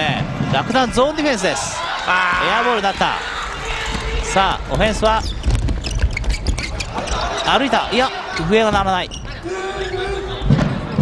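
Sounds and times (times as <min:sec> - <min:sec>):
basketball bouncing on hardwood: 0:04.8 - 0:06.9.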